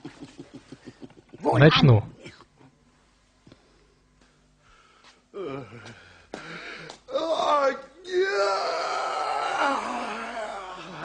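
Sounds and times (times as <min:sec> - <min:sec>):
person wailing: 0:07.1 - 0:11.0.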